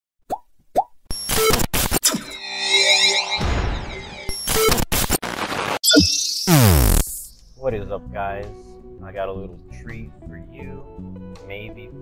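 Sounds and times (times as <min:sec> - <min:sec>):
electronic beeping tones: 0:01.1 - 0:05.2, 0:05.8 - 0:07.4
rising electronic blips: 0:01.1 - 0:07.4
burst of static noise: 0:03.2 - 0:07.3.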